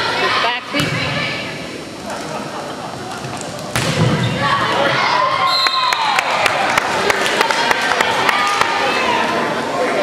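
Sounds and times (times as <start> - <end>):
crowd murmuring and calling out: 0.0 - 10.0
volleyball smack: 3.7 - 4.2.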